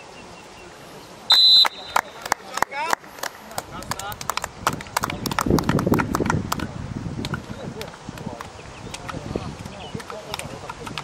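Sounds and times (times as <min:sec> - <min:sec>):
people clapping: 0:01.5 - 0:11.0.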